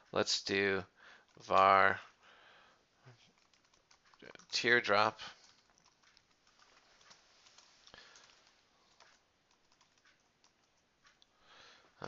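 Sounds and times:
typing on computer keyboard: 3.3 - 4.7, 5.3 - 11.2.

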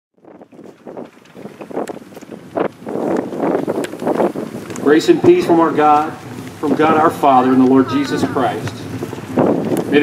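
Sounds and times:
wind buffeting microphone: 0.2 - 10.0.

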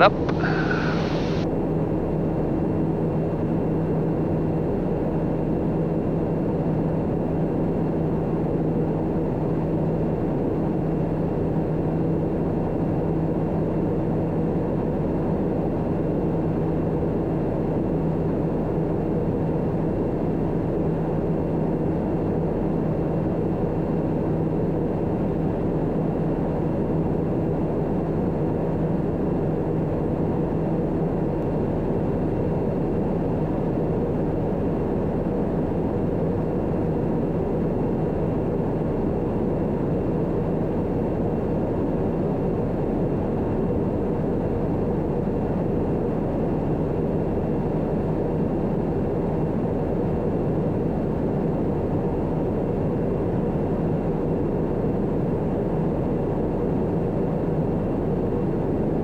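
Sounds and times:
constant low hum: 0.0 - 59.0
turboprop engine drone in cabin: 0.0 - 59.0.

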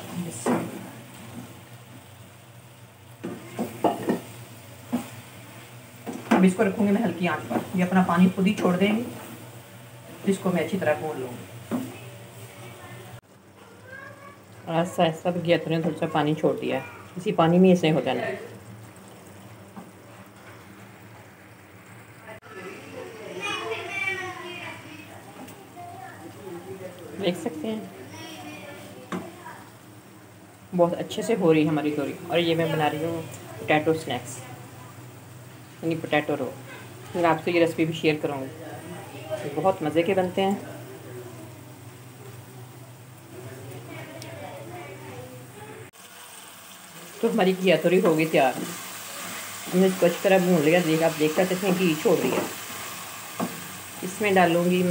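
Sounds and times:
woman speaking: 0.0 - 0.7, 6.3 - 9.2, 10.2 - 11.4, 14.7 - 18.5, 30.8 - 34.6, 35.8 - 40.7, 47.2 - 48.7, 49.7 - 52.5, 54.0 - 54.9
food sizzling in a pot: 0.0 - 54.9.

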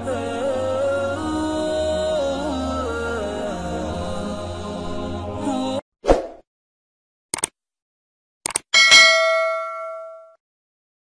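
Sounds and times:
bell ding: 8.8 - 10.4.

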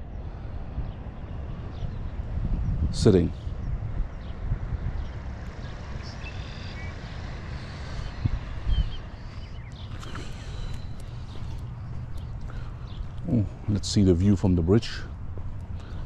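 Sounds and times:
wind rumble on microphone: 0.0 - 16.0
faint bird chirps: 5.1 - 13.8.

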